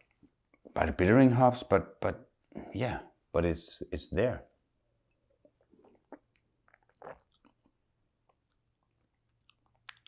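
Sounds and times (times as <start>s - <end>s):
man sipping and swallowing: 5.4s - 10.0s.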